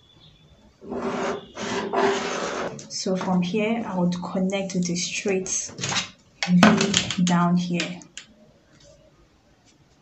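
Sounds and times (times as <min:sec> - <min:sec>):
pen and ruler scratching paper: 0:00.8 - 0:03.4.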